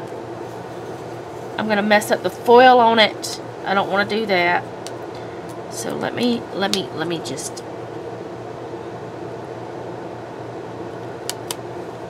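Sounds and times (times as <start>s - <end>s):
fan-like room hum: 0.0s - 12.0s.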